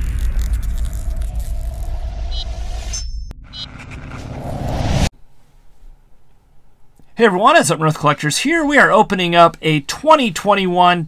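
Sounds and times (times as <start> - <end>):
crackling sparkle: 0.0 - 3.3
cinematic intro rumble: 0.0 - 5.1.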